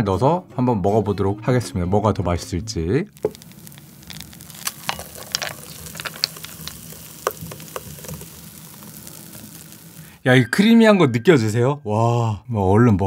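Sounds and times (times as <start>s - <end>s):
ice crackles and clicks: 3.1s - 10.2s
liquid pouring into bowl: 3.1s - 10.2s.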